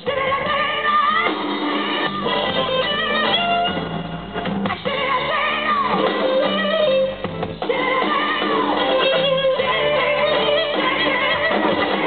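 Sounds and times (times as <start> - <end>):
blues band playing: 0.0 - 12.0.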